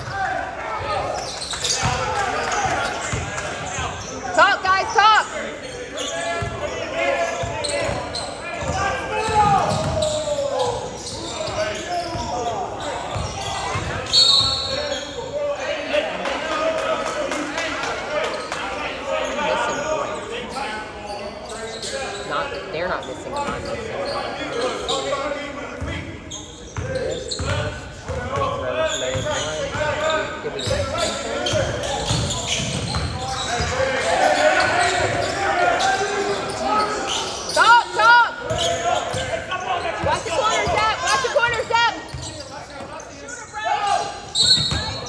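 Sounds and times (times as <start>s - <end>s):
shouting and chatter: 0.0s - 45.0s.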